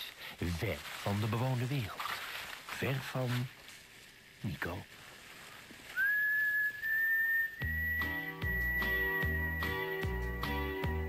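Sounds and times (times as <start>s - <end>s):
long whistled note: 5.9s - 10.7s
advert music with bass and guitar: 7.6s - 11.0s.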